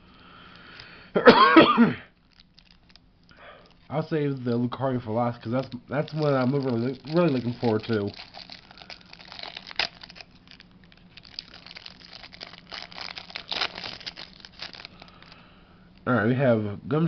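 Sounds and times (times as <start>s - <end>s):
faint steady hum: 0.0s - 17.0s
plastic wrapping crinkling: 2.1s - 16.1s.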